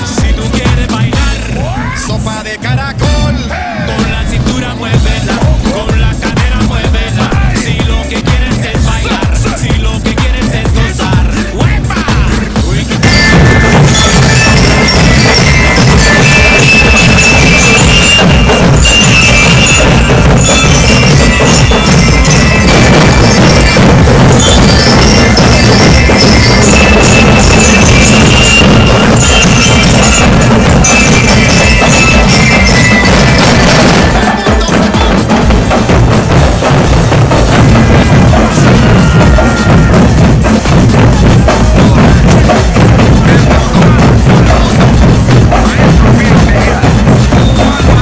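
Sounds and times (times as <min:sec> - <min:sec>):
bass and snare drums: 0:00.0 - 0:48.0
bell lyres melody: 0:13.0 - 0:48.0.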